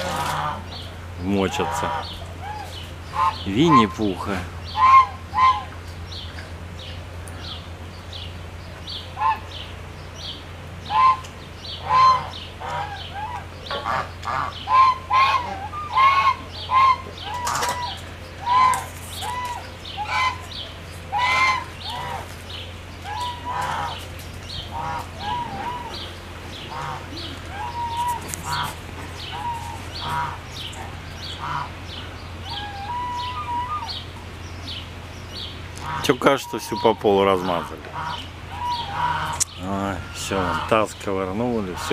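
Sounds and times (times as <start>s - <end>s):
birds calling: 0.0s - 41.9s
steady low hum: 0.0s - 41.9s.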